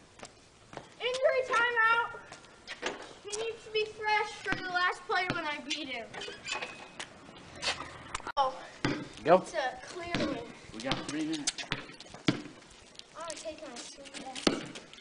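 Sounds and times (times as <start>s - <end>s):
boys calling out: 1.0s - 2.4s.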